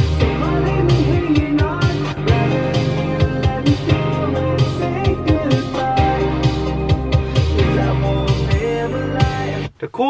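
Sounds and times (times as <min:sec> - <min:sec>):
guitar: 0:00.0 - 0:09.7.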